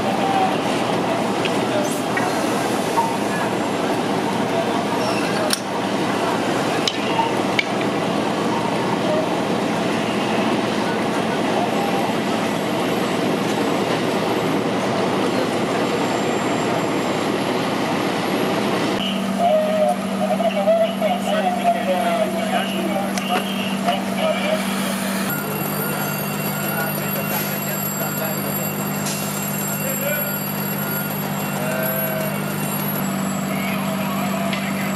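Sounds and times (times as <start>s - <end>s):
fire truck engines running: 0.0s - 34.9s
indistinct voices: 0.0s - 34.9s.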